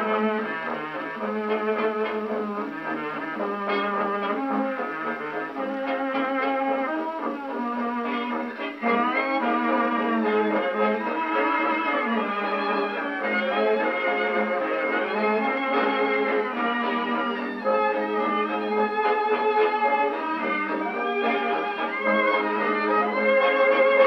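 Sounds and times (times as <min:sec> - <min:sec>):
old record of dance orchestra: 0:00.0 - 0:24.0.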